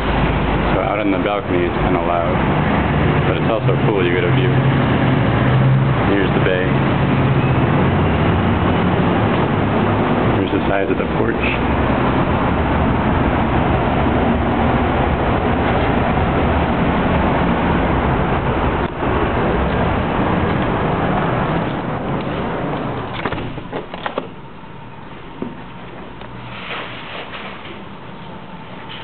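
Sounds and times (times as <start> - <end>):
road traffic noise: 0.0 - 29.0
door clicks and knocks: 23.0 - 24.4.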